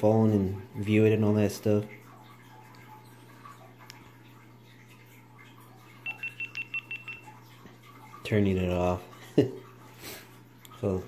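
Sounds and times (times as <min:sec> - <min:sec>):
faint low hum: 0:00.0 - 0:11.0
camera short high beeps: 0:06.0 - 0:07.2.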